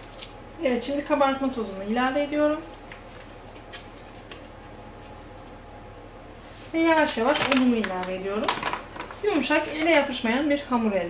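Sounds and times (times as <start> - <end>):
low room hum: 0.0 - 11.0
powder rustling from paper sachet: 6.4 - 10.0.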